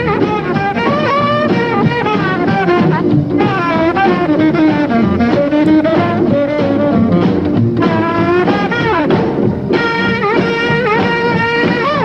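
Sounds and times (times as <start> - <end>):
rock and roll band playing: 0.0 - 12.0
saxophone melody: 0.0 - 12.0.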